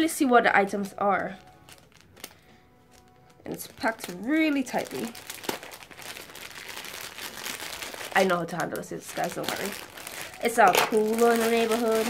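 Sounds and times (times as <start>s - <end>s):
plastic bag crinkling: 0.7s - 12.0s
scissors cutting plastic: 7.8s - 12.0s.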